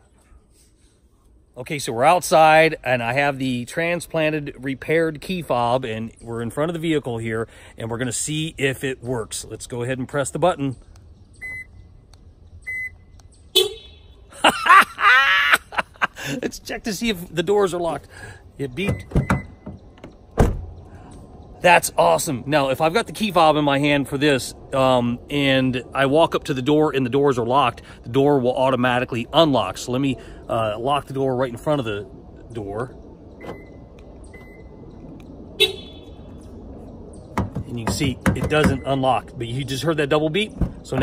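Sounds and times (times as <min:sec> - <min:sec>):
car lock beep: 0:11.4 - 0:11.9, 0:12.6 - 0:13.2, 0:18.9 - 0:19.8, 0:33.4 - 0:34.8
man laughing and whooping: 0:14.3 - 0:16.6.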